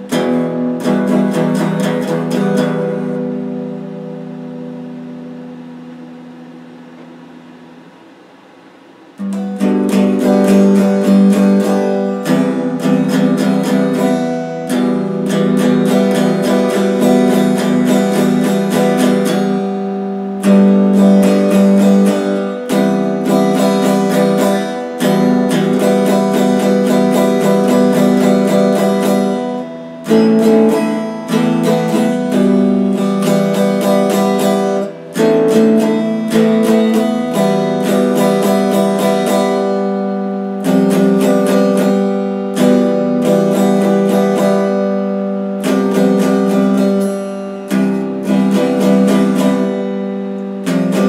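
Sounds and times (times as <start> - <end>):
electric guitar chord strumming: 0.0 - 51.0.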